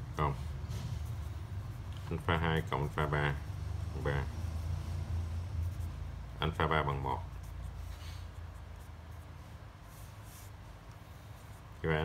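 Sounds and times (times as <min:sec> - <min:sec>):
man speaking: 0:00.0 - 0:00.5, 0:02.0 - 0:04.4, 0:06.4 - 0:07.4, 0:11.8 - 0:12.0
pen scratching on paper: 0:00.0 - 0:12.0.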